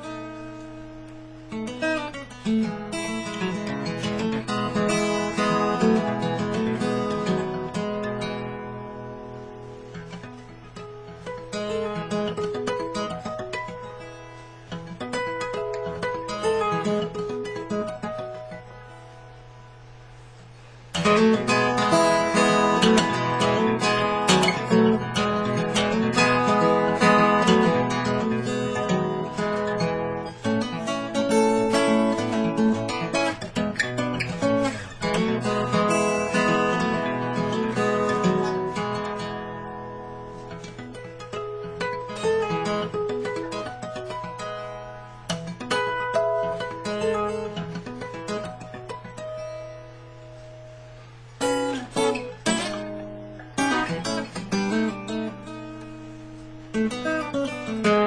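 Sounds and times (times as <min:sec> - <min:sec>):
fingerstyle acoustic guitar: 0:00.0 - 0:58.0.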